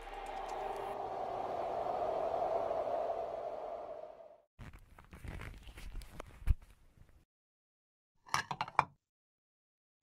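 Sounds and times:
faint hum: 0.0s - 4.4s.

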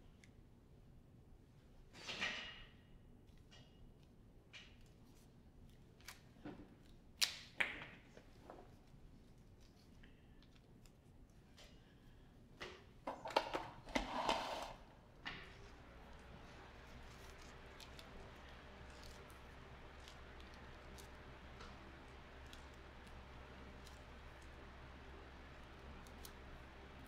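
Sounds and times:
electric fan humming: 13.1s - 27.0s.

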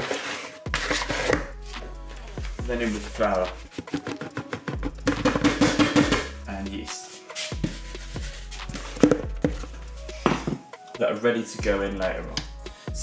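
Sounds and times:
plastic knocking on steel: 3.8s - 6.3s.

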